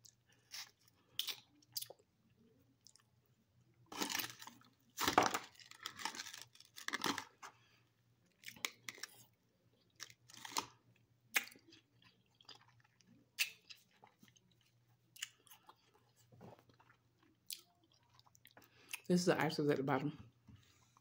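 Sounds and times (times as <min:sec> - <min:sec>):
crunching and chewing: 0:00.0 - 0:19.1.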